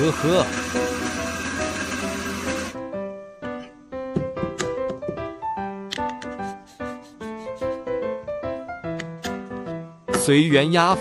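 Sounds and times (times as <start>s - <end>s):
electric coffee grinder: 0.0s - 2.8s
music with held notes: 0.0s - 11.0s.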